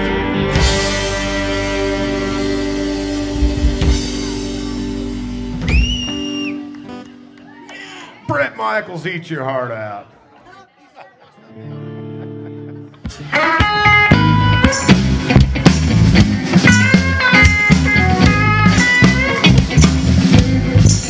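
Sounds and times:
lead electric guitar bent notes: 0:00.0 - 0:07.5, 0:11.5 - 0:21.0
blues band playing: 0:00.0 - 0:09.4, 0:11.4 - 0:21.0.

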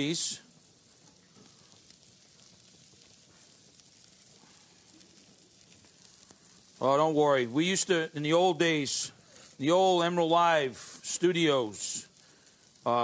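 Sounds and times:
meat sizzling on a grill: 0:00.0 - 0:13.0.

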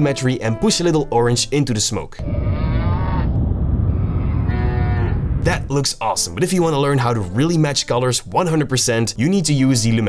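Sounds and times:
steady low rumble: 0:02.2 - 0:06.9.

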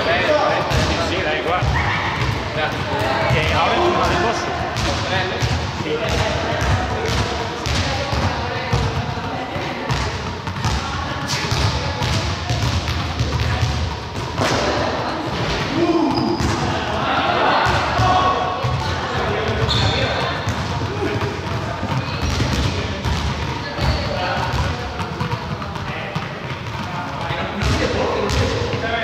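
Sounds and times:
indistinct voices talking: 0:00.0 - 0:29.0
balls bouncing on hard floor: 0:00.2 - 0:29.0.

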